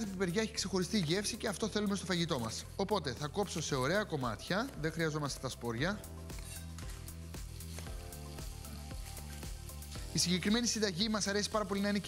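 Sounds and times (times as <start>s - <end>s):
background music with bass: 0.0s - 12.0s
sausage sizzling in a pan: 6.1s - 12.0s.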